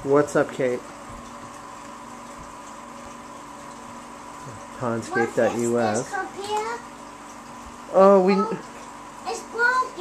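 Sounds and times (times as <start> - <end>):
aquarium pump hum: 0.0 - 10.0.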